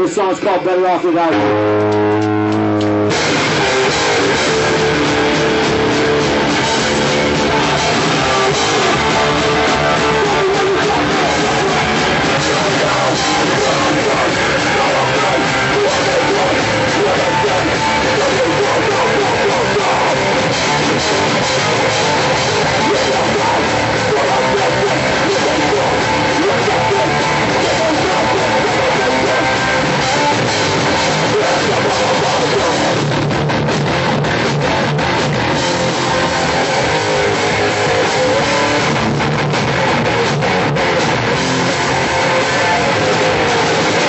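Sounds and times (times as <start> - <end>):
distorted electric guitars: 0.0 - 44.0
drum kit: 1.3 - 44.0.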